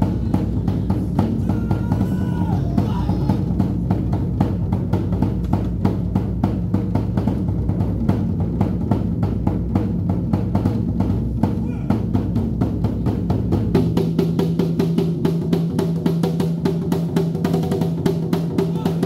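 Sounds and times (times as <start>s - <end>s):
barrel drums beating fast: 0.0s - 19.0s.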